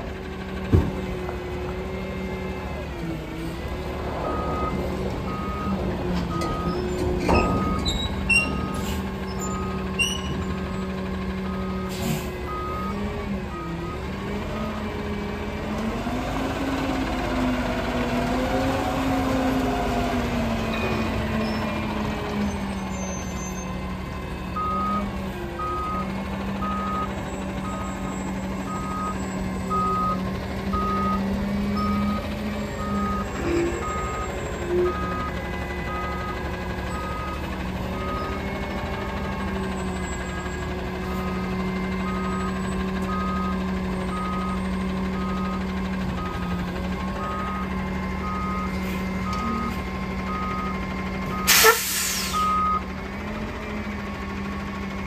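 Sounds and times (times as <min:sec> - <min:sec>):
truck engine running: 0:00.0 - 0:55.0
reversing alarm beeping: 0:04.2 - 0:14.8, 0:24.6 - 0:52.9
air brake hiss: 0:11.9 - 0:12.3, 0:51.5 - 0:52.5.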